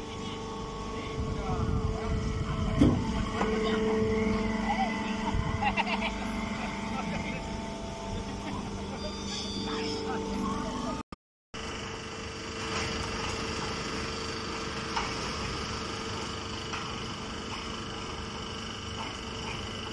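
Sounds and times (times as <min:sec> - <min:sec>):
farm machinery droning: 0:00.0 - 0:11.0, 0:11.6 - 0:19.9.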